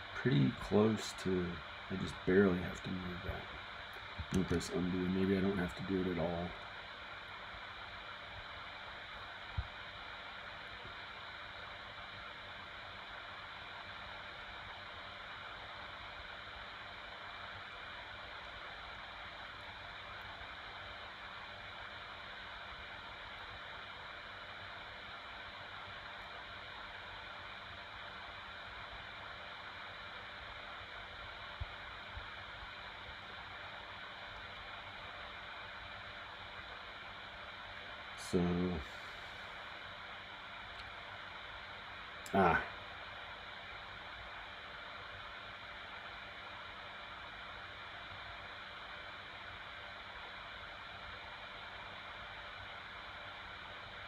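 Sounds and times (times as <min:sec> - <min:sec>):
microphone hiss: 0:00.0 - 0:54.0.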